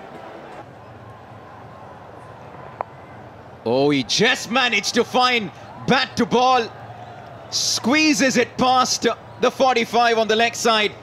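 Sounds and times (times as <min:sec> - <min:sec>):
stadium crowd ambience: 0:00.0 - 0:11.0.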